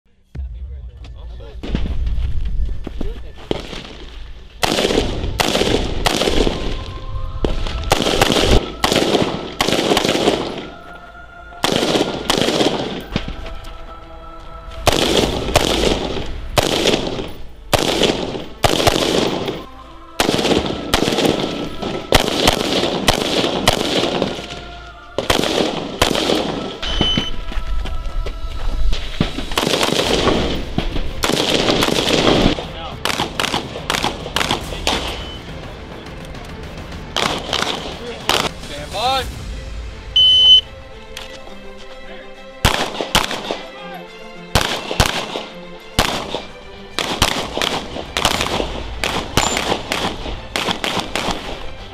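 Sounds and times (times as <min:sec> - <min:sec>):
rifle shots: 0:03.5 - 0:10.8, 0:11.6 - 0:13.4, 0:14.9 - 0:24.6, 0:25.2 - 0:27.4, 0:29.5 - 0:35.4, 0:37.2 - 0:38.6, 0:42.6 - 0:43.7, 0:44.5 - 0:51.8.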